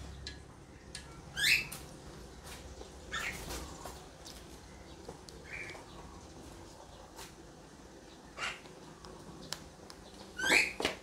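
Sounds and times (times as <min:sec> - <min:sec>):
bird chirping: 0:00.0 - 0:07.3, 0:07.9 - 0:11.0.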